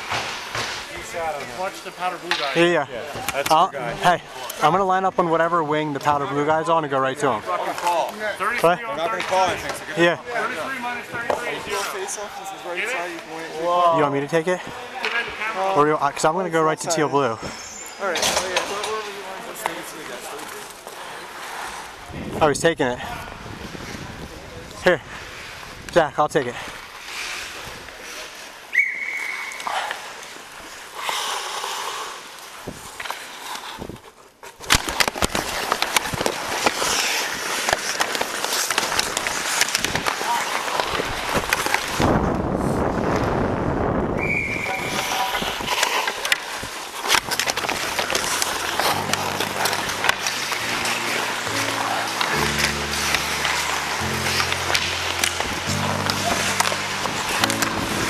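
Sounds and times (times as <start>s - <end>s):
sticks and puck clacking: 0.0s - 3.7s, 7.5s - 12.0s, 14.5s - 16.3s, 17.4s - 22.0s, 29.2s - 42.2s, 44.6s - 58.0s
skate blades scraping ice: 17.4s - 22.0s, 26.5s - 43.4s, 44.4s - 58.0s.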